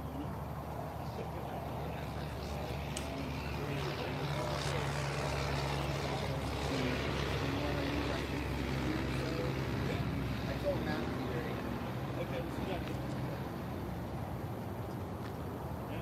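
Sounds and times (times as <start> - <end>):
faint voices: 0.0 - 16.0
low engine drone: 0.0 - 16.0.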